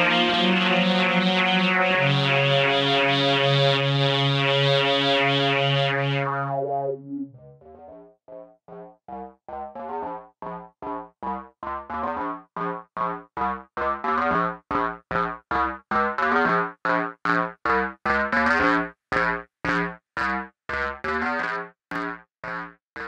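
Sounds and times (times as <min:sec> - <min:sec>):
synthesizer playing short notes: 0:00.0 - 0:07.5.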